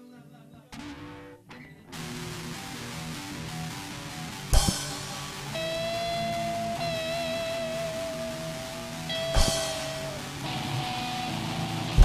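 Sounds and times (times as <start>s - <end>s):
electric guitar noodling: 0.6s - 12.0s
long held high guitar note: 2.0s - 12.0s.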